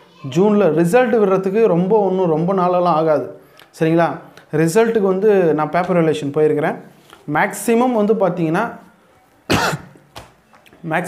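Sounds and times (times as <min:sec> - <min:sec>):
man speaking: 0:00.2 - 0:08.9, 0:10.8 - 0:11.0
man coughing: 0:09.5 - 0:10.0.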